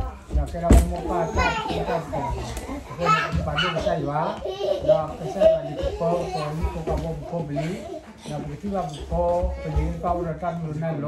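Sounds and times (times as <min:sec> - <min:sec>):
man talking: 0:00.3 - 0:11.0.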